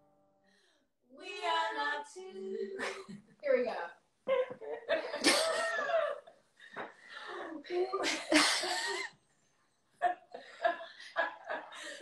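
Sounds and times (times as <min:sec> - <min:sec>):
women laughing: 0:04.3 - 0:06.4, 0:10.0 - 0:12.0.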